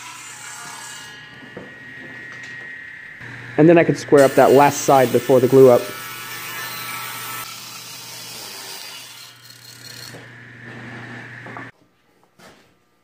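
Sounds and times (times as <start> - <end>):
saw motor humming: 0.0 - 11.7
table saw cutting wood: 0.0 - 11.7.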